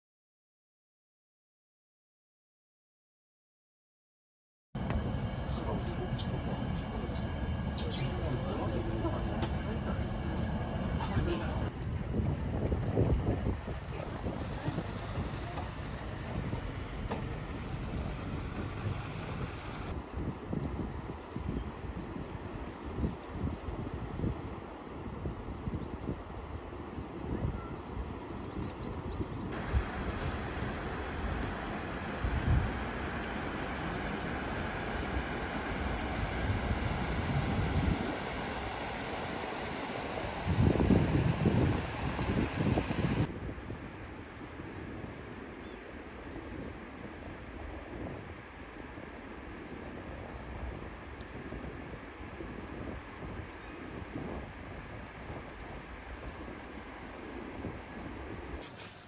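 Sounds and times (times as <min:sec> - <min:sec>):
wind buffeting microphone: 0:04.8 - 0:59.0
outdoor hiss: 0:16.5 - 0:19.9, 0:58.6 - 0:59.0.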